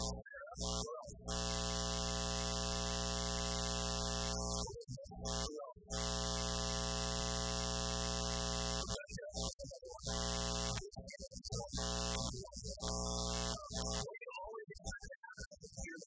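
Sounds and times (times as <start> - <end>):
faint man's voice: 0.0 - 1.2, 4.6 - 5.9, 8.8 - 16.0
loud electrical buzz with hiss: 0.0 - 10.9, 11.6 - 14.1.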